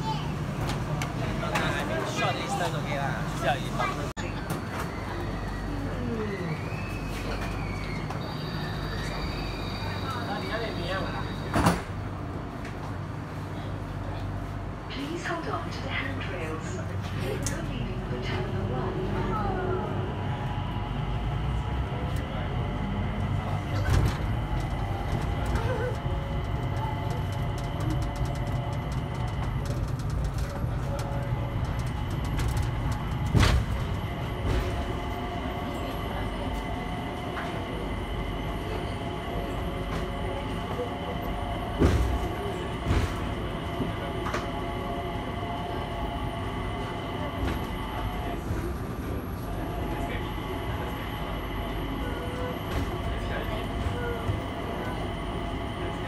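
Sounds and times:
low running rumble: 15.7 - 56.0.

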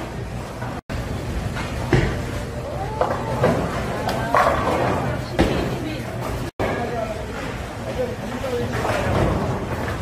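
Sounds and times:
bowling balls rolling: 1.0 - 6.9.

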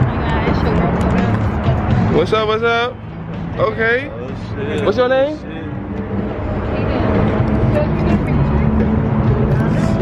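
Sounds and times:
traffic rumble: 0.0 - 10.0
voices: 3.6 - 10.0.

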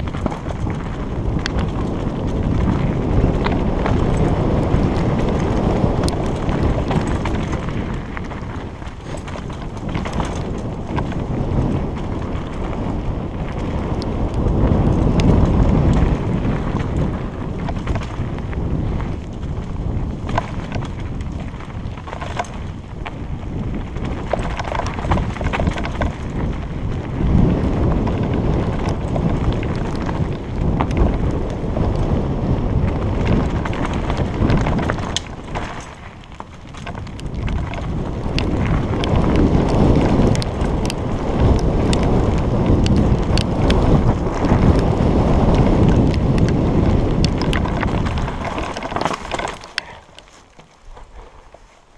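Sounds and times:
bike clicks and rattles: 0.0 - 51.9
bike tyres rumbling on dirt: 0.0 - 51.9
wind buffeting microphone: 0.0 - 51.9.

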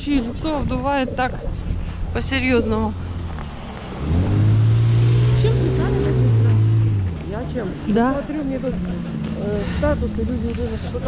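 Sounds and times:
car engine passing: 0.1 - 11.0.

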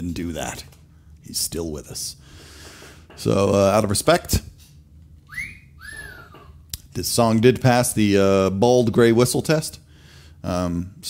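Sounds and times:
man whistling: 5.3 - 6.4.

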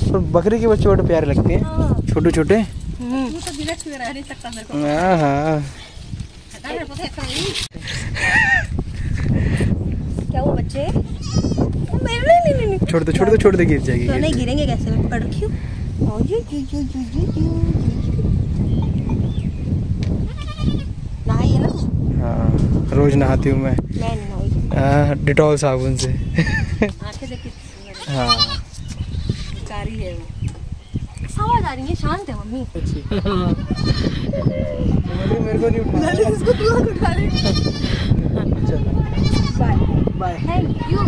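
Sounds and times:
goat kid bleating: 11.1 - 11.8, 20.3 - 21.9, 27.9 - 29.7, 33.4 - 34.9, 37.2 - 38.0, 39.1 - 39.8.

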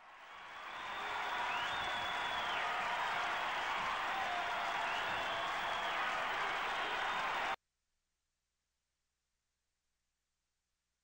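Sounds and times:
crowd applause and cheering: 0.0 - 7.6.

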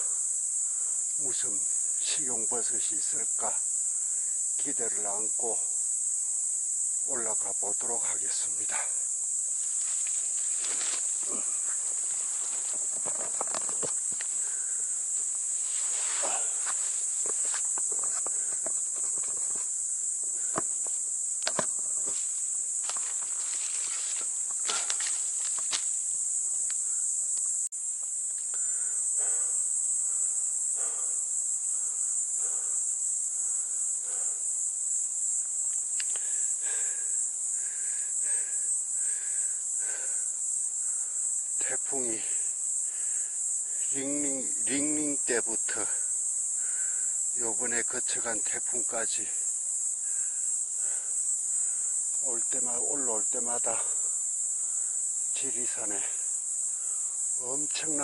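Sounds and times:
insects chirping: 0.0 - 58.0
footsteps crunching through dry leaves: 9.6 - 13.4, 22.1 - 26.0.

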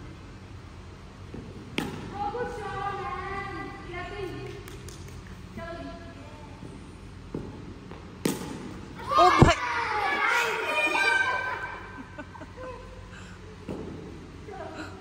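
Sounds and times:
excited high-pitched voices shouting: 9.0 - 12.1.

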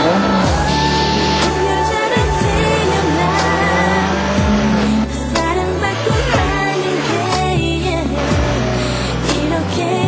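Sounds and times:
background music: 0.0 - 10.0
racing motorcycle engines passing: 0.0 - 10.0.

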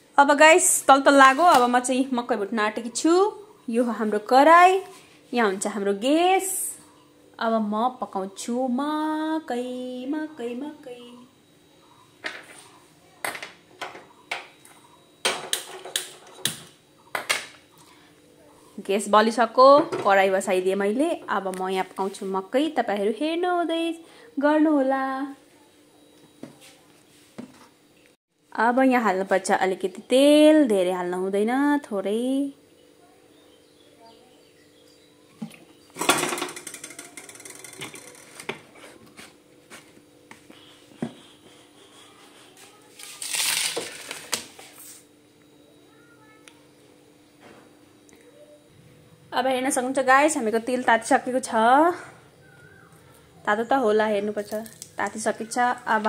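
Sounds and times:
faint steady hum: 0.0 - 56.0
metal kitchenware clattering: 36.0 - 38.6.

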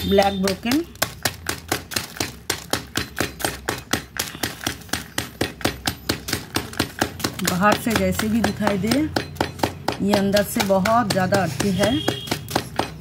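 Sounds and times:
hammer pounding dry clay: 0.0 - 13.0.

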